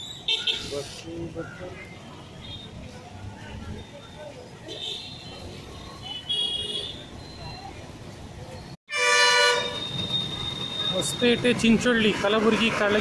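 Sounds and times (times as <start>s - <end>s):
low traffic rumble: 0.0s - 13.0s
vehicle horns: 4.7s - 7.2s, 8.9s - 11.3s.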